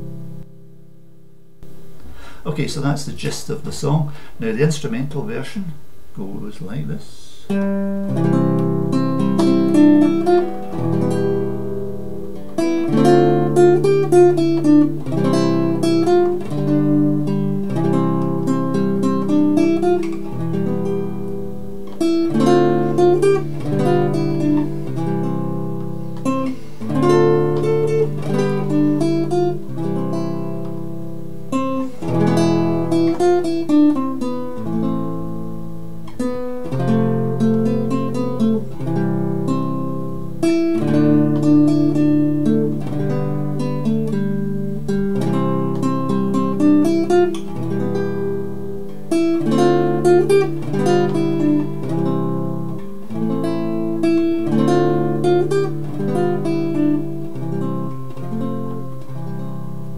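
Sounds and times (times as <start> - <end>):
fingerpicked classical guitar: 0.0 - 59.9.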